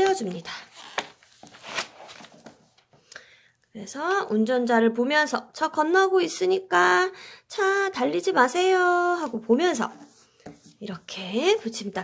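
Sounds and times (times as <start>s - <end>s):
soft paper rustles: 0.0s - 3.0s.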